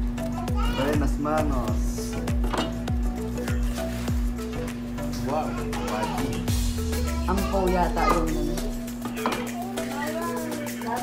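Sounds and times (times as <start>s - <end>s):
deep bass drum hits: 6.5s - 7.5s.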